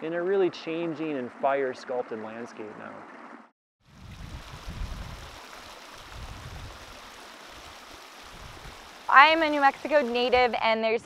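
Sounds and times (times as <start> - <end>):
wind rumble on microphone: 3.9 - 5.4, 6.0 - 9.4
creek running over rocks: 3.9 - 10.6.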